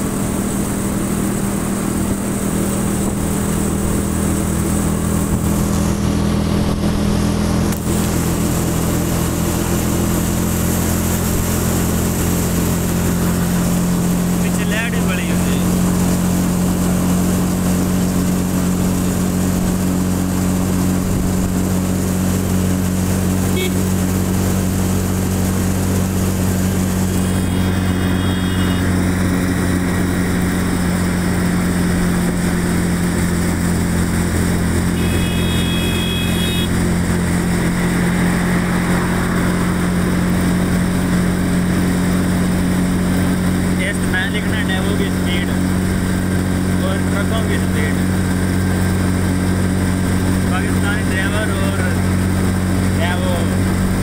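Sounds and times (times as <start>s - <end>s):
vehicle engine running: 0.0s - 54.0s
brief high tone: 27.1s - 29.0s, 34.9s - 36.9s.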